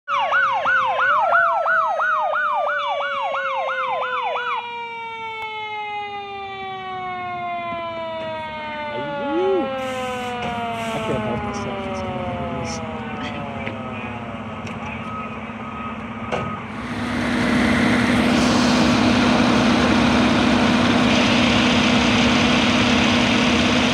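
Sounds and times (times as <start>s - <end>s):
siren winding down in pitch: 0.1s - 23.9s
warbling yelp siren: 0.1s - 23.9s
low engine hum: 7.6s - 23.9s.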